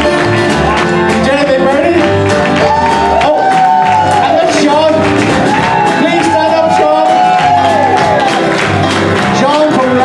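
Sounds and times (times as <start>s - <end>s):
acoustic country band playing: 0.0s - 10.0s.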